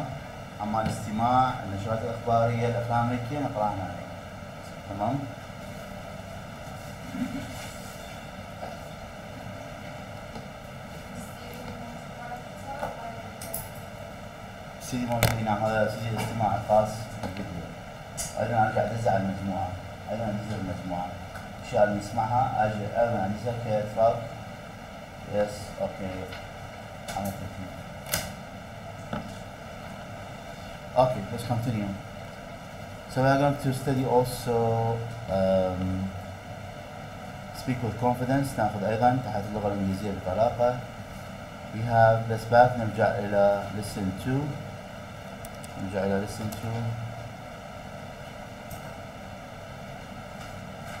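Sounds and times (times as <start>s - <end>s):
microphone hiss and hum: 0.0s - 51.0s.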